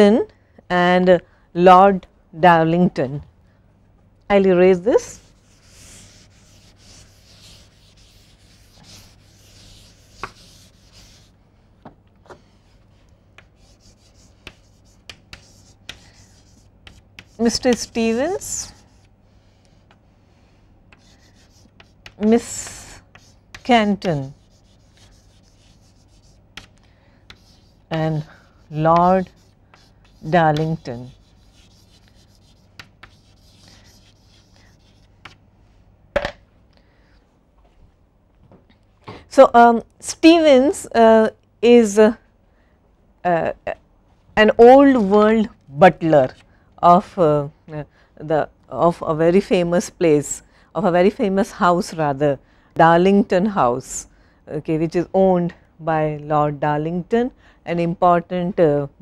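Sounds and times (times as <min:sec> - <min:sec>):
duster wiping blackboard: 0:05.2 - 0:11.3, 0:12.3 - 0:19.0, 0:21.0 - 0:26.4, 0:27.3 - 0:35.4
duster tapping board: 0:28.9 - 0:31.1.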